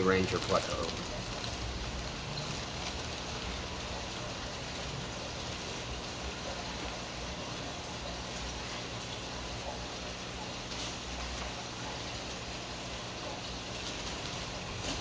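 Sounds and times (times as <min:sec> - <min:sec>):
aquarium water bubbling and splashing: 0:00.0 - 0:15.0
low hum of pumps: 0:00.0 - 0:15.0.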